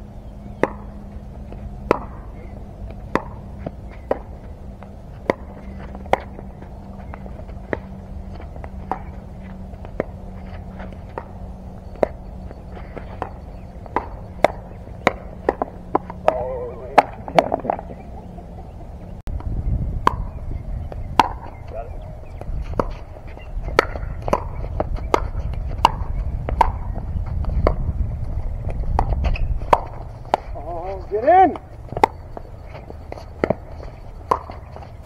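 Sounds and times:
paddles hitting plastic ball: 13.0s - 17.9s.

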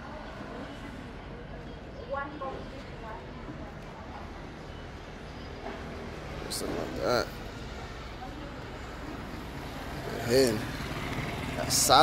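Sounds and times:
street traffic rumble: 0.0s - 12.0s.

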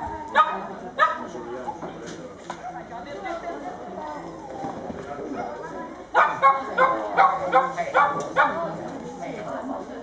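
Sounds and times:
murmur of people talking: 0.0s - 10.0s
dog barking: 0.4s - 1.3s, 6.2s - 8.7s.

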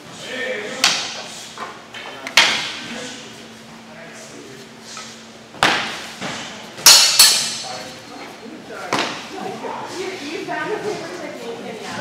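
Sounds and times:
metal blades clashing: 6.8s - 7.8s.

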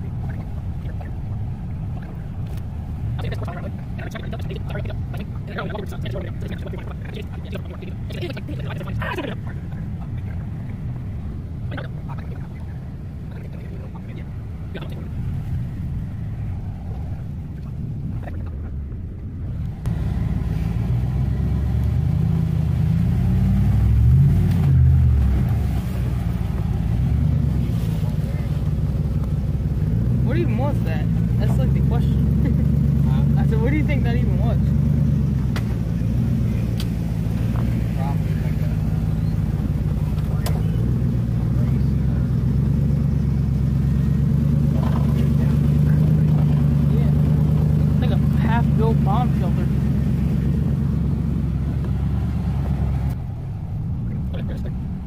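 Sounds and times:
truck engine running: 0.0s - 55.0s.

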